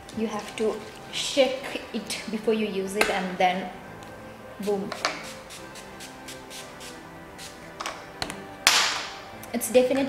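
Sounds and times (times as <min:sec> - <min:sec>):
spray bottle hiss: 0:04.9 - 0:07.6.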